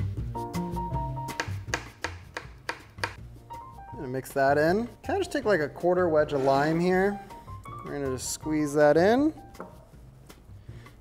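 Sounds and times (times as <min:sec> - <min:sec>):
background music with bass line: 0:00.0 - 0:04.1
knife chopping on plastic board: 0:01.3 - 0:03.2.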